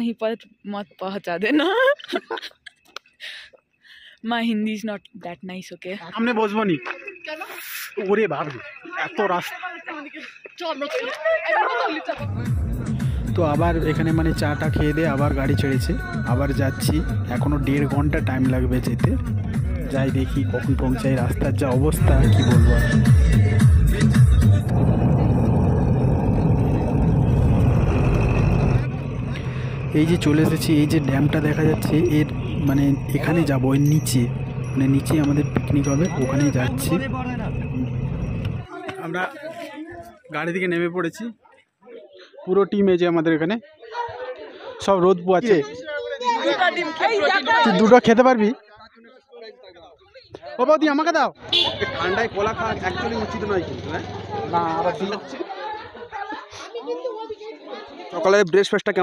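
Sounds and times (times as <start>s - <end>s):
people talking: 0.0s - 2.5s, 4.3s - 12.6s, 13.3s - 25.6s, 28.6s - 38.0s, 51.6s - 59.0s
vehicle engine and road noise: 12.1s - 39.2s, 51.4s - 55.2s
low hum: 24.2s - 38.7s.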